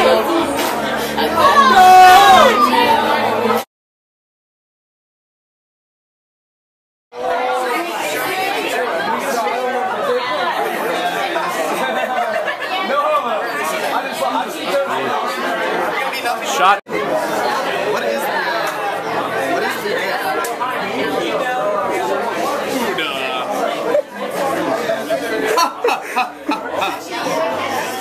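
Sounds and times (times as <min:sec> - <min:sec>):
crowd babble: 0:00.0 - 0:03.7, 0:07.2 - 0:28.0.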